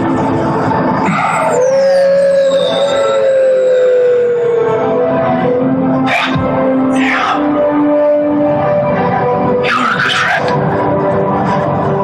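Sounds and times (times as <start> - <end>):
dramatic orchestral music: 0.0 - 12.0.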